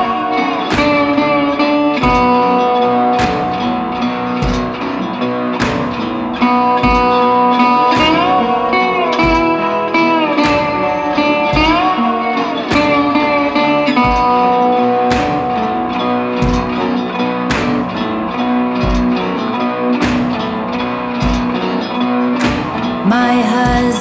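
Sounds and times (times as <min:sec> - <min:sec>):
slide guitar gliding notes: 0:00.0 - 0:24.0
low thumping beat: 0:02.0 - 0:02.6, 0:03.2 - 0:19.4, 0:20.0 - 0:21.7, 0:22.4 - 0:24.0.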